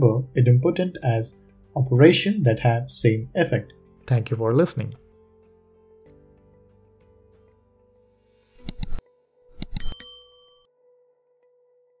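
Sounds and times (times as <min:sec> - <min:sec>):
bright bell-like ding: 0:09.6 - 0:10.7.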